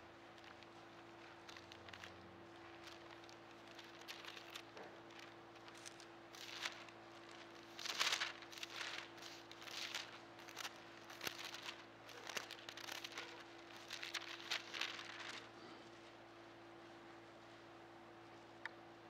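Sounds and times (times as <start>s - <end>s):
faint steady hum: 0.0s - 19.0s
pages rustling: 0.2s - 15.5s.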